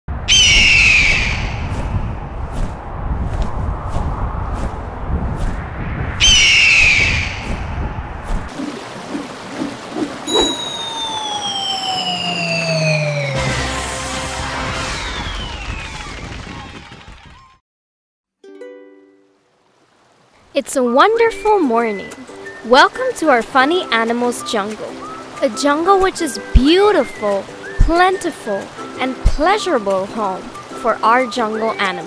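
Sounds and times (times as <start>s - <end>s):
low rumbling noise: 0.1s - 8.5s, 10.5s - 17.5s
eagle screeches: 0.3s - 1.5s, 6.2s - 7.4s
long descending whistle: 10.3s - 16.6s.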